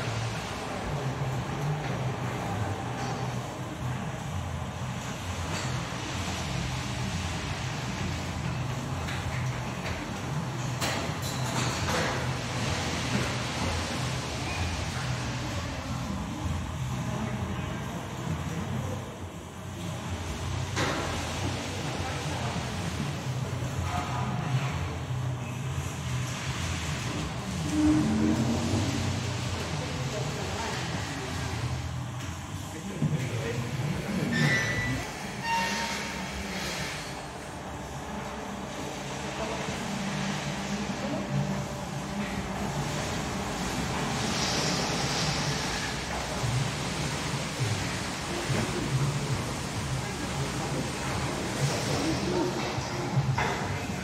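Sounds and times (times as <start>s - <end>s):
milking machinery humming: 0.0s - 54.0s
indistinct voices: 27.4s - 31.8s.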